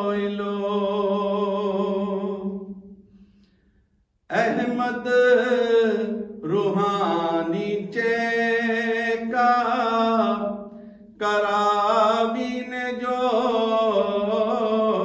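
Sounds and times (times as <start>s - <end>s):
man singing unaccompanied: 0.0s - 2.6s, 4.3s - 10.6s, 11.2s - 15.0s.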